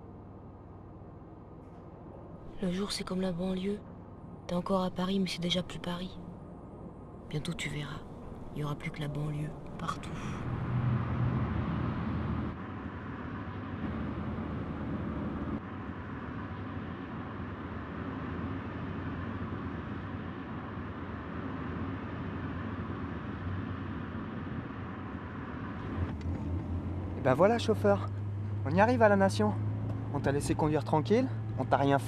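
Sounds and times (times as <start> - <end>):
car engine hum: 7.1 - 32.0.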